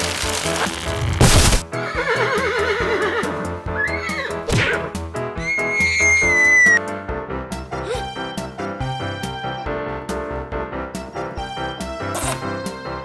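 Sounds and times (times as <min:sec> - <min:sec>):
upbeat background music: 0:00.0 - 0:13.0
horse neighing: 0:01.8 - 0:04.5.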